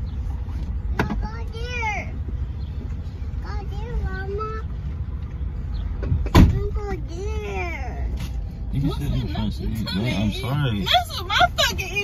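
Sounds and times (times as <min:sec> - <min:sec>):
sharp thump: 0:06.0 - 0:06.6.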